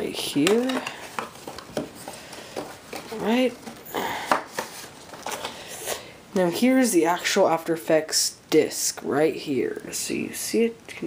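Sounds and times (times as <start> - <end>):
cardboard and paper rustling: 0.0 - 5.8.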